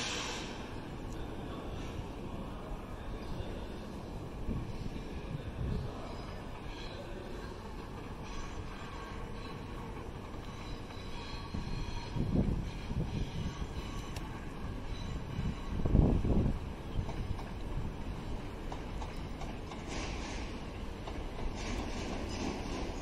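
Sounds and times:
train wheels rumbling on rails: 0.0 - 23.0.

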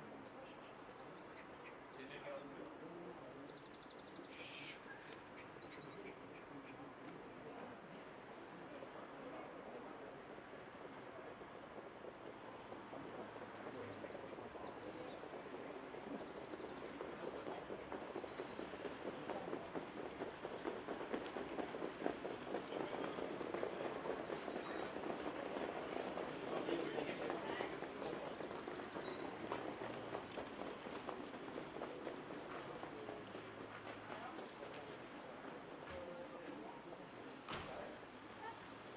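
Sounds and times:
horse hoofbeats on sand: 11.7 - 36.3.

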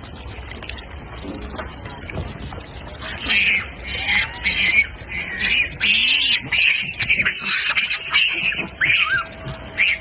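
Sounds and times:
macaques squealing and chattering: 3.0 - 10.0.

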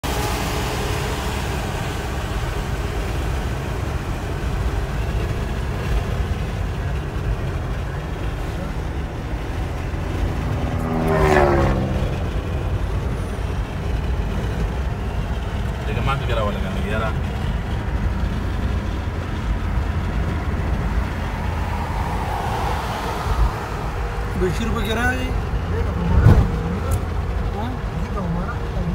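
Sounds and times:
car cabin road rumble: 0.0 - 28.9
pitched sound sliding down: 20.8 - 24.4.

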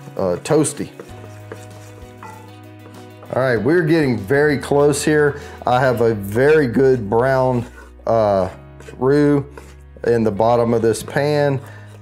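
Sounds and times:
soft background music: 0.0 - 12.0
wooden spoon stirring in pot: 0.0 - 12.0.

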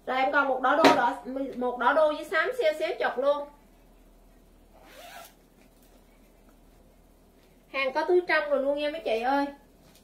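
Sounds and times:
zipper being pulled open: 4.7 - 5.4.

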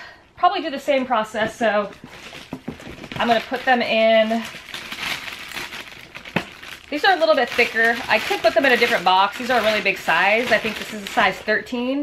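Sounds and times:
plastic bag crinkling: 1.9 - 11.7.

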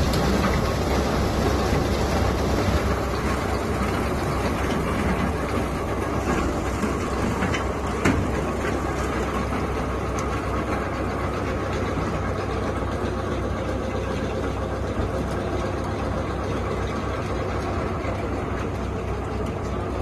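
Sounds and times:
machinery noise with low hum: 0.0 - 20.0.

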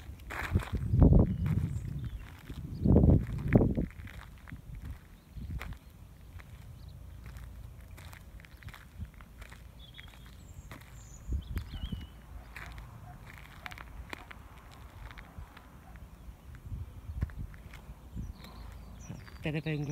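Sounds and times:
steady low rumble: 0.0 - 19.6
footsteps on dry rough ground: 0.0 - 19.9.

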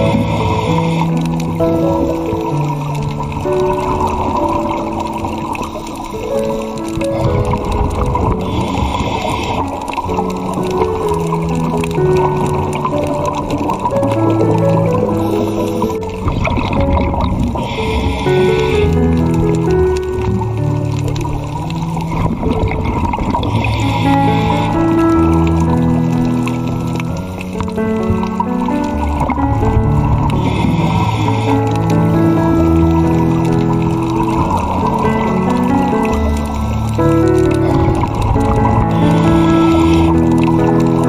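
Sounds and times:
rushing water underwater: 0.0 - 41.0
soft background music: 0.0 - 41.0.

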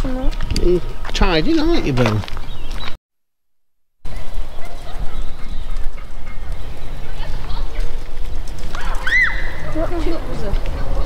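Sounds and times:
low outdoor rumble: 0.0 - 2.6, 4.1 - 11.0.

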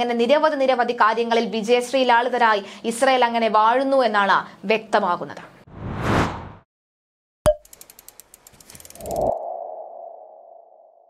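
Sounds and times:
rapid ticks: 7.6 - 9.2.

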